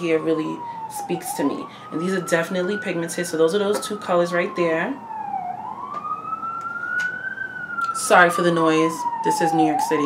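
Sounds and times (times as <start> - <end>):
emergency vehicle siren wailing: 0.0 - 10.0.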